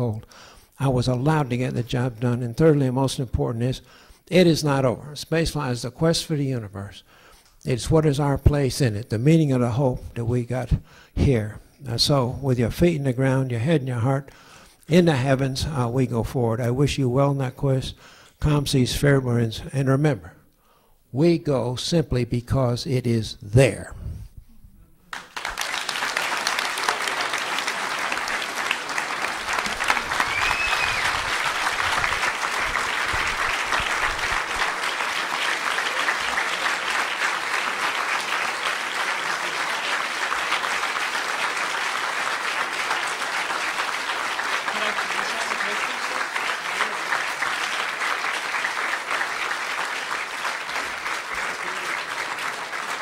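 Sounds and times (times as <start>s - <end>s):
audience applauding: 25.1s - 53.0s
crowd whistle: 26.4s - 31.6s.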